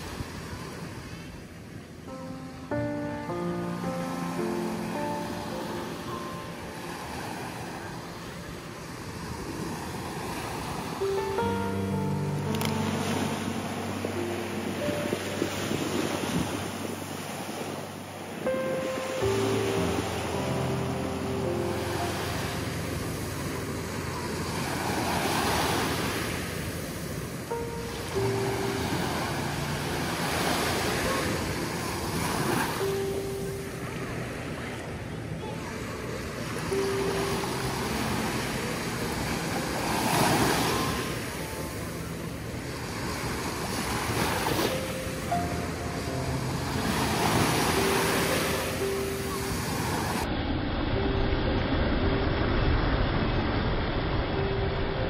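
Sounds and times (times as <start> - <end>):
music of sustained chords: 0.0 - 55.0
ocean waves washing on sand: 0.0 - 55.0.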